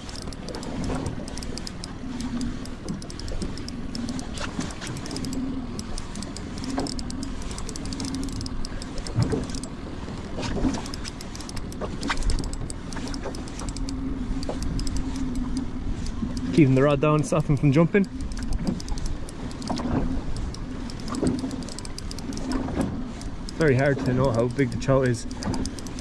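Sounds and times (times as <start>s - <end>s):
spinning reel clicking: 0.0s - 9.7s, 10.8s - 26.0s
steady low hum: 0.0s - 26.0s.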